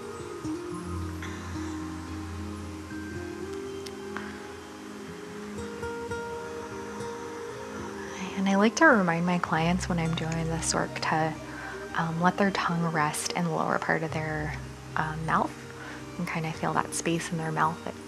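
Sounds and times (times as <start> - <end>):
slow soft background music: 0.0 - 18.0.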